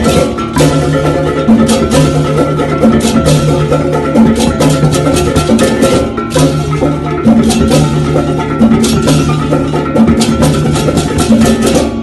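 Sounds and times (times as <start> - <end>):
drums in fast rhythm: 0.0 - 12.0.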